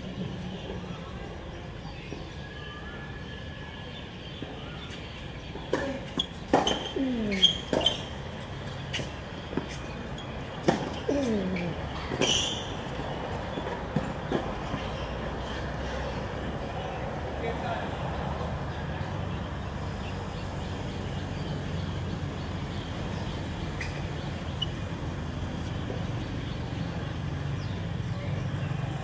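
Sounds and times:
tennis ball struck by racquet: 5.6s - 8.1s, 10.6s - 11.4s.

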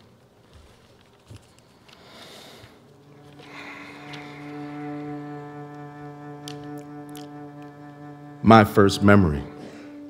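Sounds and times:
cello bowed note: 2.8s - 10.0s
faint clicks: 6.4s - 7.8s.

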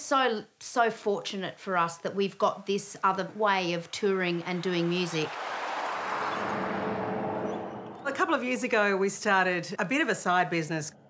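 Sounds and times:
vehicle towing trailer driving past: 4.0s - 8.7s.

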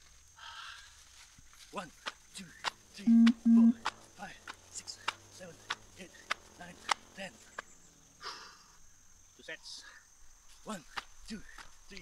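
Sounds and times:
person counting quietly: 1.8s - 6.9s
sharp hand claps: 3.8s - 7.0s.

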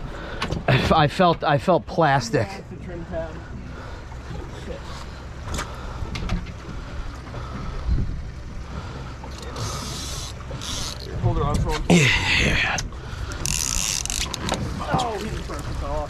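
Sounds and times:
boat engine idling: 0.0s - 16.0s.

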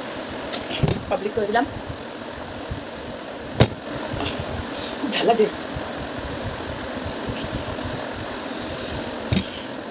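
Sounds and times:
low mechanical hum: 0.0s - 9.9s.

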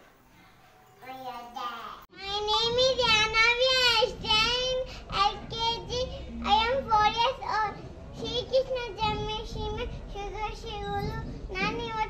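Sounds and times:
girl singing unaccompanied: 1.0s - 12.0s.

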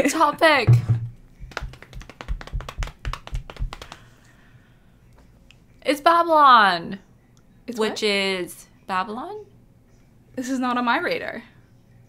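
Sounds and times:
hands drumming on hard surface: 0.7s - 4.0s.

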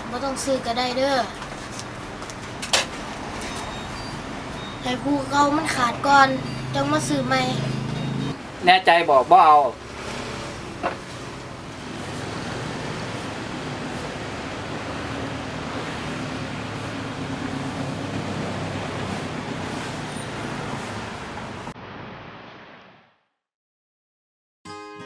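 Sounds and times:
road traffic hum: 0.0s - 23.0s.

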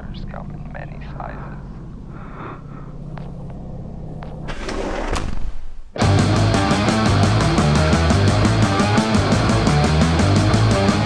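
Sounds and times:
low rumbling drone: 0.0s - 4.6s.

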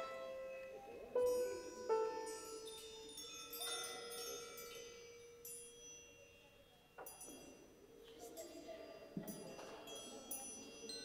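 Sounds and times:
struck metal chimes ringing: 0.0s - 11.0s.

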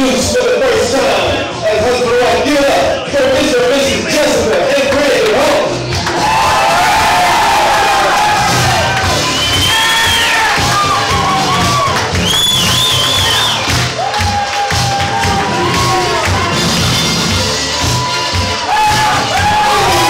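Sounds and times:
loud music with steady beat: 0.0s - 20.0s
people clapping: 4.4s - 20.0s
crowd cheering and whooping: 6.0s - 20.0s.

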